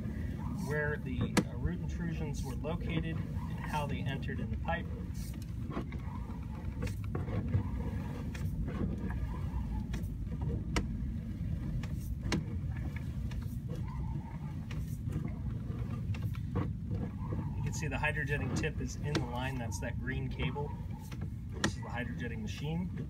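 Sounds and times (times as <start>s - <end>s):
engine running: 0.0s - 23.0s
sharp clicks and knocks: 5.2s - 11.0s, 11.6s - 19.6s, 20.4s - 22.0s.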